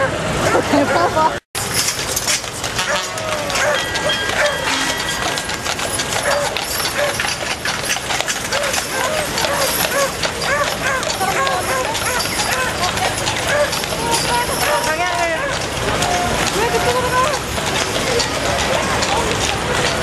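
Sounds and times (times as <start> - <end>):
crowd voices: 0.0 - 1.4, 2.0 - 20.0
horse hooves clip-clopping on pavement: 1.6 - 20.0.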